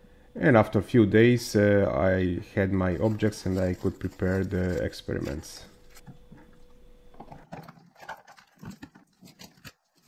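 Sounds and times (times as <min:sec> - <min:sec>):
faint hum: 0:00.0 - 0:10.0
latex gloves rustling: 0:02.7 - 0:06.6.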